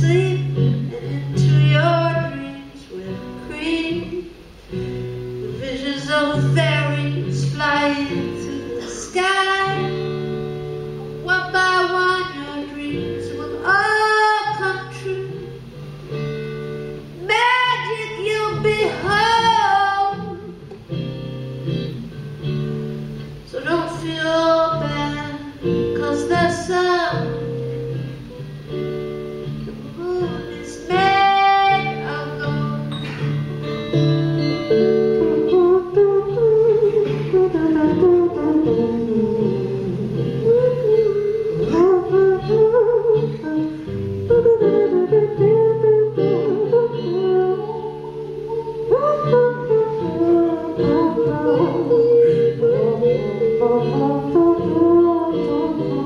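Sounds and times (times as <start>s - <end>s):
woman singing: 0.0s - 4.5s, 5.4s - 16.2s, 16.9s - 20.7s, 23.4s - 27.8s, 29.7s - 33.3s, 34.4s - 56.0s
acoustic guitar: 0.0s - 56.0s.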